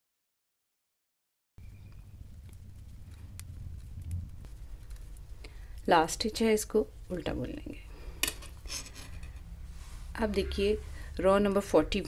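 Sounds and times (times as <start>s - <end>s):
low steady rumble: 1.6s - 12.0s.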